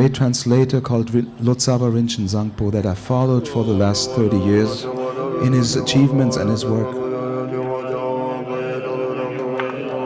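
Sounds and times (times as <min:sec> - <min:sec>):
monks chanting in unison: 0:03.2 - 0:10.0.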